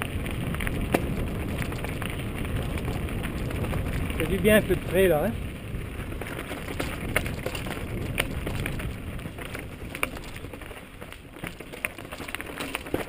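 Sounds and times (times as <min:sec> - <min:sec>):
bike rattling: 0:00.0 - 0:13.0
tyres crunching over loose stones: 0:00.0 - 0:13.0.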